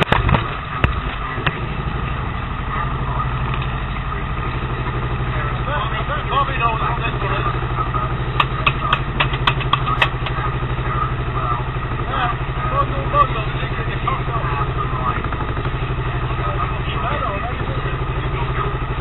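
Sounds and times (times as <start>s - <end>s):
boat engine droning: 0.0s - 19.0s
hand claps: 8.4s - 10.4s.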